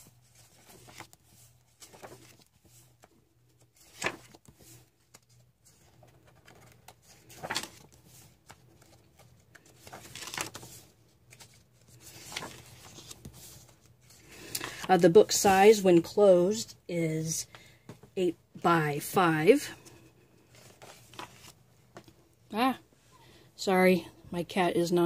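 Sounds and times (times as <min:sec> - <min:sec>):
paper pages being turned: 0:00.0 - 0:15.6, 0:20.4 - 0:22.2.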